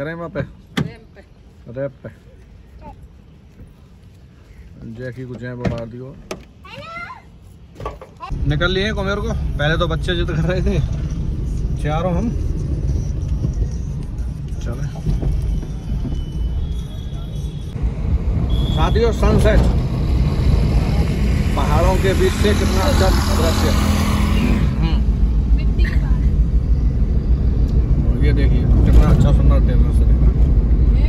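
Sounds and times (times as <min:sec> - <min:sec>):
car engine rumble: 0:00.0 - 0:31.0
road noise: 0:00.0 - 0:31.0.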